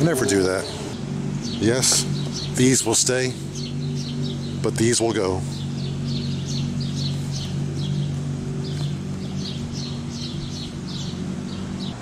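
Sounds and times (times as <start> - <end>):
low hum: 0.0 - 12.0
small bird chirping: 0.0 - 12.0.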